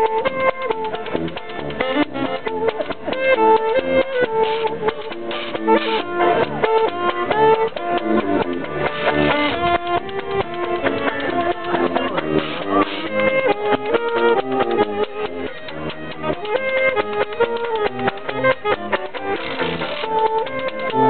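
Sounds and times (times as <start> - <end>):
banjo chords: 0.0 - 21.0
saxophone melody: 0.0 - 21.0
walking tuba bass: 0.0 - 21.0
washboard beat: 0.0 - 21.0.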